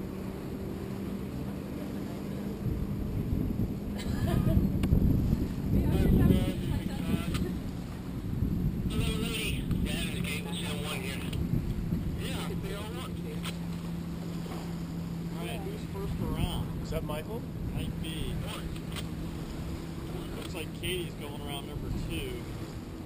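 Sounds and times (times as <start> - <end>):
engine humming: 0.0 - 23.0
wind rumbling on microphone: 0.0 - 23.0.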